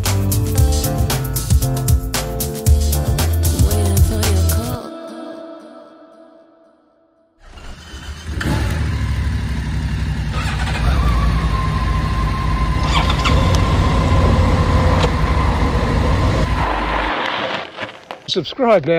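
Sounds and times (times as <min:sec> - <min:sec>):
motorcycle engine running: 0:07.8 - 0:16.8.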